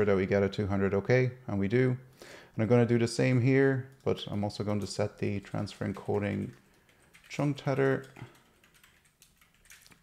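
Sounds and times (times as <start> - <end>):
faint typing on computer keyboard: 3.2 - 10.0.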